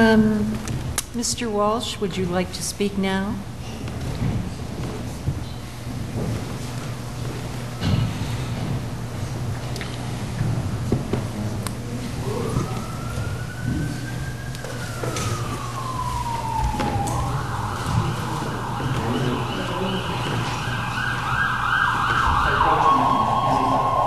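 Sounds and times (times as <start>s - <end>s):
emergency vehicle siren: 12.0s - 24.0s.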